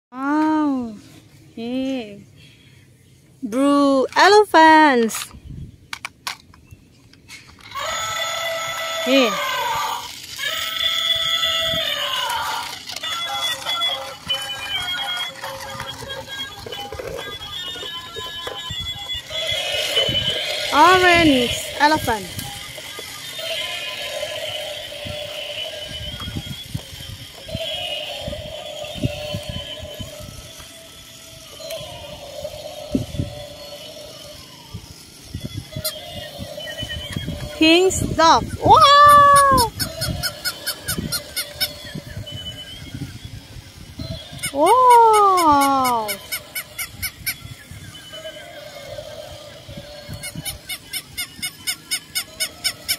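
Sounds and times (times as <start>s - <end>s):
toy walking mechanism clicking: 5.9s - 52.9s
lower toy sound: 7.5s - 52.9s.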